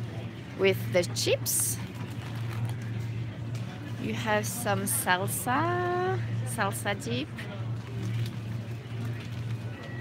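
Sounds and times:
faint store noise: 0:00.0 - 0:10.0
steady low hum: 0:00.0 - 0:10.0.

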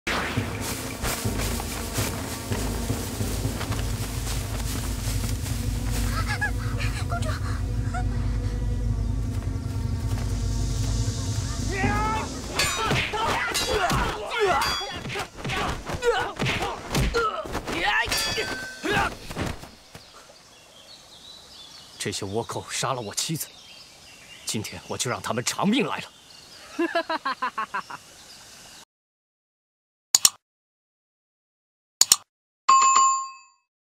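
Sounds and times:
low rumble: 0:00.1 - 0:13.2.

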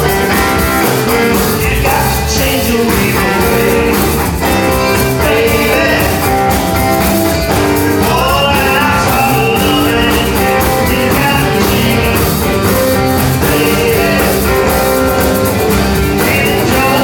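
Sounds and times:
drums: 0:00.0 - 0:17.0
electric bass: 0:00.0 - 0:17.0
strummed guitars: 0:00.0 - 0:17.0.

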